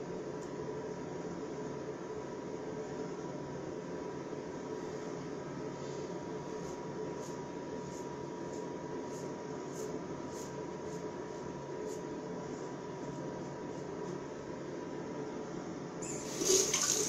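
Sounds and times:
background hiss and hum: 0:00.0 - 0:17.0.

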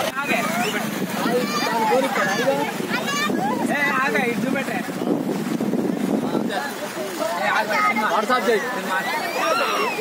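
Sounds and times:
men talking outdoors: 0:00.0 - 0:10.0
rushing floodwater: 0:00.0 - 0:10.0
wind on microphone: 0:00.4 - 0:07.1.

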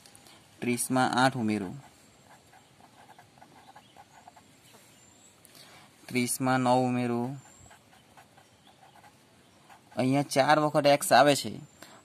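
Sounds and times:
person speaking: 0:00.6 - 0:04.4, 0:06.0 - 0:09.1, 0:09.7 - 0:11.7
pen scratching on paper: 0:01.6 - 0:04.5, 0:07.2 - 0:10.4.

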